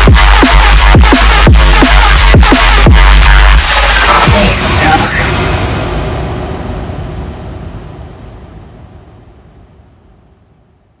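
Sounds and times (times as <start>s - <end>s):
drum and bass track: 0.0s - 6.6s
heavy low rumble: 0.0s - 11.0s.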